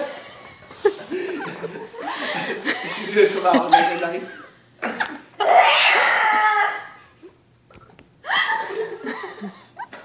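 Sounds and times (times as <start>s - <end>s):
people laughing: 0.6s - 5.6s, 8.3s - 10.0s.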